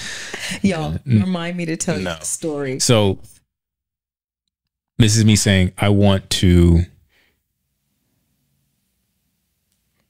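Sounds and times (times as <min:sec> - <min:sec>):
person speaking: 0:00.0 - 0:03.4.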